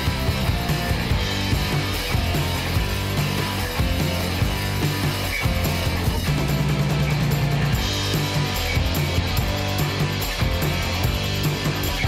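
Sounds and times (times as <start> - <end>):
rock music: 0.0 - 12.0.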